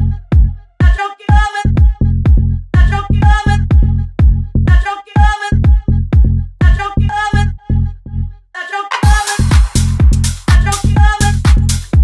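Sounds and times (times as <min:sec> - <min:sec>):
kick drum and bass pulsing: 0:00.0 - 0:07.4, 0:09.0 - 0:12.0.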